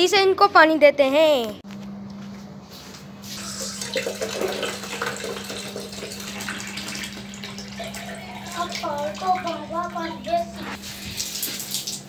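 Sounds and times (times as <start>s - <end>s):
water running from tap into jug: 3.4s - 12.0s.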